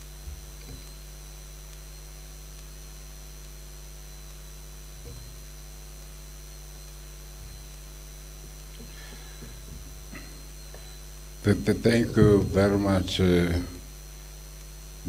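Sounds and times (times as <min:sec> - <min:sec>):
electrical mains hum: 0:00.0 - 0:15.0
thin high whine: 0:00.0 - 0:15.0.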